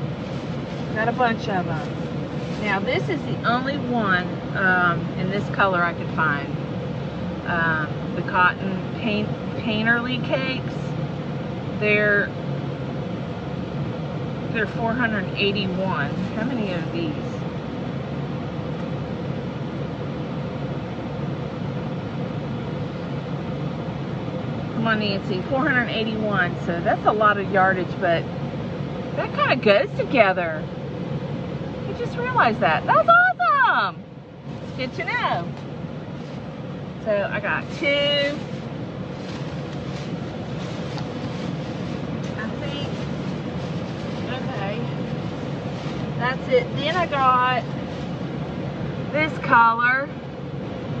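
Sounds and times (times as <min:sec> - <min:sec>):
car air conditioning blowing: 0:00.0 - 0:51.0
low even hum: 0:00.0 - 0:51.0.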